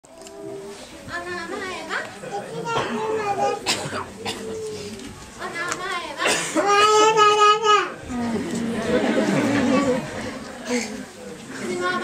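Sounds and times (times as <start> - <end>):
young children chattering: 0.1 - 12.0.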